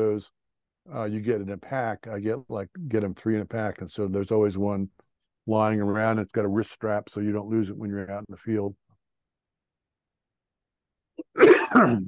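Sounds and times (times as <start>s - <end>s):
man coughing: 11.2s - 12.0s.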